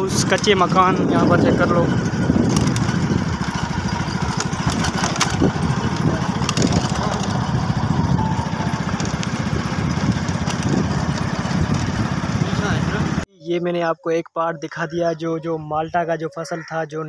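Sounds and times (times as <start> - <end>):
motorcycle engine running: 0.0 - 13.2.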